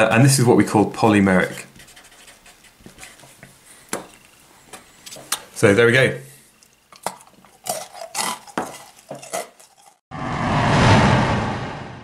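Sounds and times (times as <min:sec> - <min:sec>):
marker writing on paper: 0:01.5 - 0:03.5.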